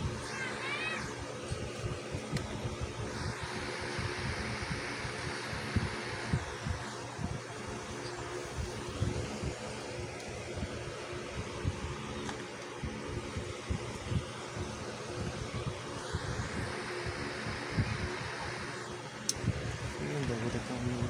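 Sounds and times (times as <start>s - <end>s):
mechanical hum with rushing noise: 0.0s - 21.0s.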